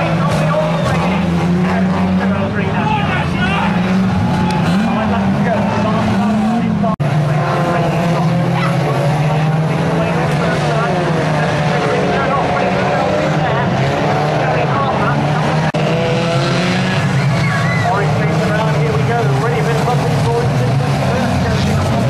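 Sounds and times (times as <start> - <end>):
racing car engines revving: 0.0 - 22.0.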